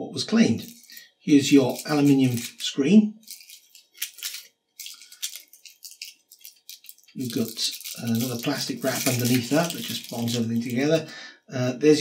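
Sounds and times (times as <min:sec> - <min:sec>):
aluminium foil crinkling: 0:00.6 - 0:11.0.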